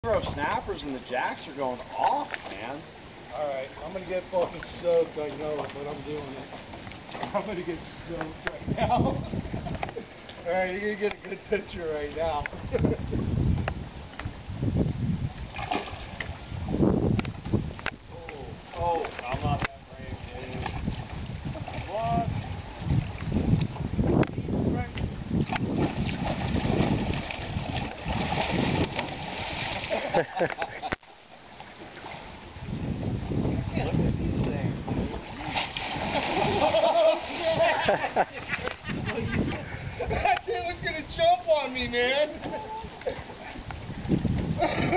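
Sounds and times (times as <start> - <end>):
water splashing against dock: 0.0 - 44.9
wind rumbling on microphone: 4.9 - 30.9, 31.8 - 44.9
people laughing: 8.8 - 10.1, 29.9 - 31.0, 36.2 - 40.6, 44.6 - 44.9.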